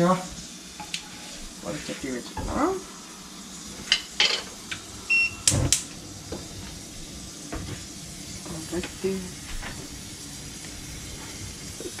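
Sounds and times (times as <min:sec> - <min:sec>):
burner igniter clicks: 0:05.4 - 0:05.9.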